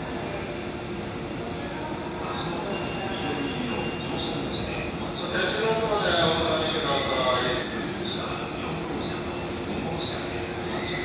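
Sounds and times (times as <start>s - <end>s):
electric train hum: 0.0s - 11.0s
station noise: 0.0s - 11.0s.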